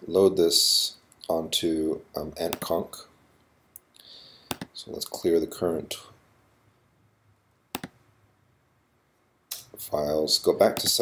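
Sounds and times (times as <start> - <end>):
mouse click: 4.5 - 4.7, 7.7 - 8.0.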